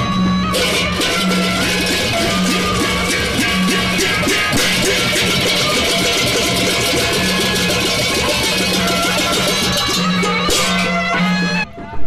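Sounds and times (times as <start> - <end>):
low held tone: 0.0 - 11.7
drums: 0.0 - 12.0
hand cymbals clashing rapidly: 0.5 - 11.5.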